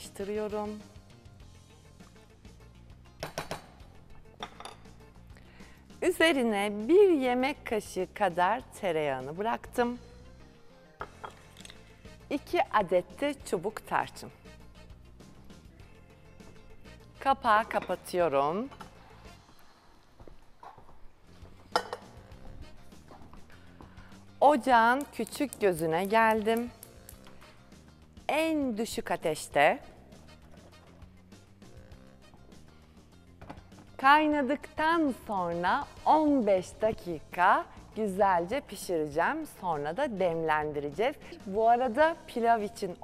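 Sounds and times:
quiet background music: 0.0 - 43.0.

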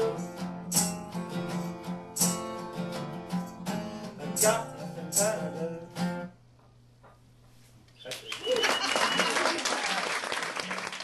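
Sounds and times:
acoustic guitar strumming: 0.0 - 6.4.

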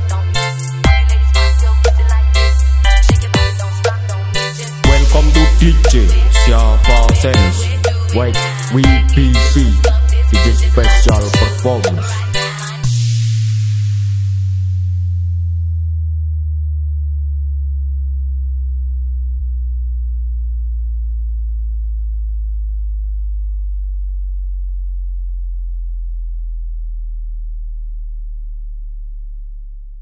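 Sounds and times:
electronic sub-bass tone gliding down: 4.0 - 12.2, 12.8 - 30.0.

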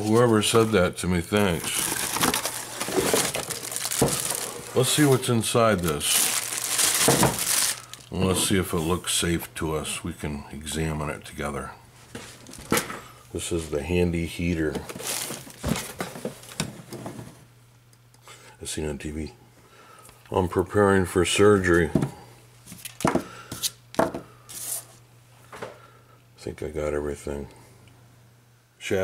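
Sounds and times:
plastic bag crinkling: 0.0 - 8.6, 12.3 - 12.8, 14.9 - 16.6
cardboard box being handled: 1.6 - 5.2.

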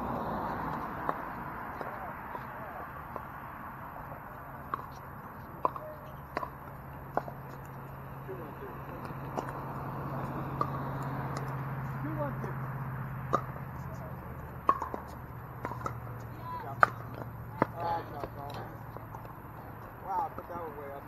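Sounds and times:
people talking: 1.8 - 2.9, 5.7 - 6.2, 8.2 - 9.3, 12.0 - 12.6, 13.8 - 14.5, 16.3 - 16.9, 17.5 - 18.8, 20.0 - 21.0
paddles hitting ball: 4.0 - 20.5.

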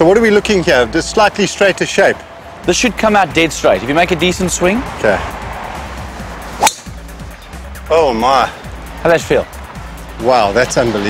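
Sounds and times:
background music: 0.0 - 11.0
golf driver striking ball: 6.6 - 7.0.

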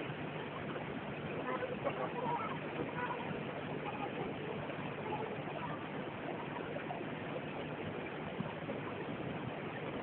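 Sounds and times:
water rushing through sluices: 0.0 - 10.0.

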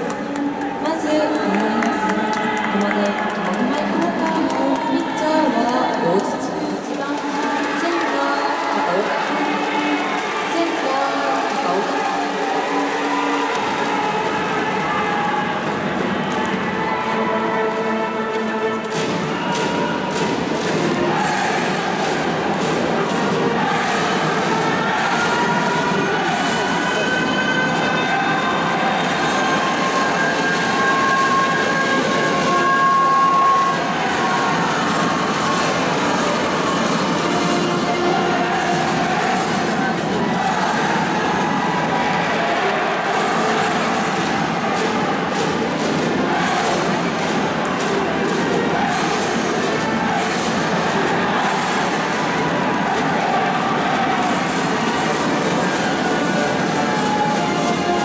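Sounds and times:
crowd noise: 0.0 - 58.0.

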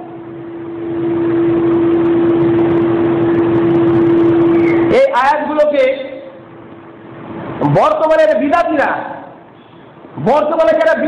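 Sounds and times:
steady single tone: 0.0 - 5.0.

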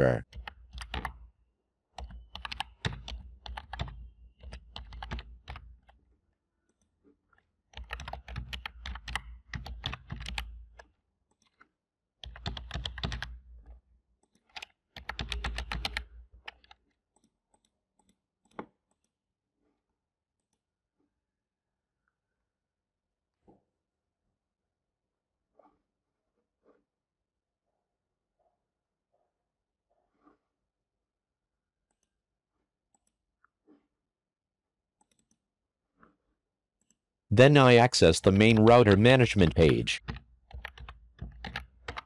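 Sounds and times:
keyboard typing: 0.3 - 1.2, 2.0 - 6.0, 7.7 - 11.6, 12.2 - 13.6, 14.2 - 19.1, 36.8 - 42.0.

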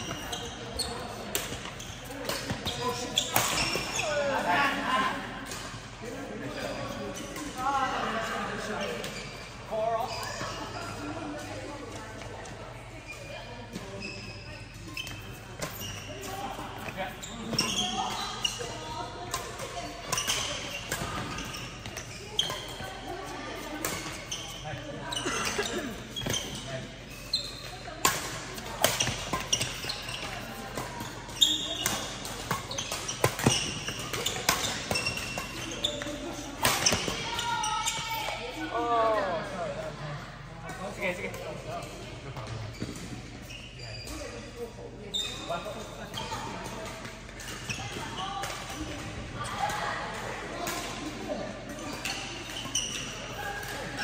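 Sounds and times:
background chatter: 0.0 - 54.0.

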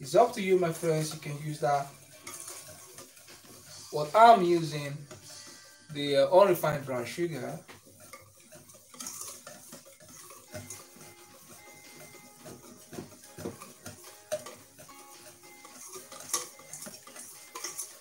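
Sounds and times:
whisk tapping metal bowl: 0.0 - 18.0.

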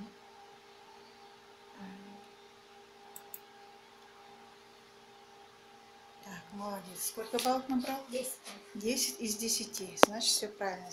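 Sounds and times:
electrical hum: 0.0 - 10.9
computer mouse clicks: 3.1 - 3.5.

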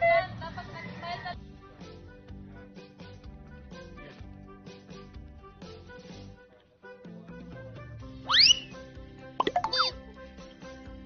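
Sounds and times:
background music: 0.0 - 11.0
cartoon chirps and falling blips: 8.3 - 8.8, 9.4 - 10.0
rising whistle-like pop: 8.3 - 8.8.

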